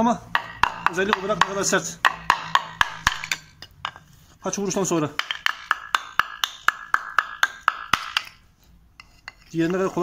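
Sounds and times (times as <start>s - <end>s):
tapping on hardened mortar: 0.3s - 4.1s, 5.0s - 8.4s.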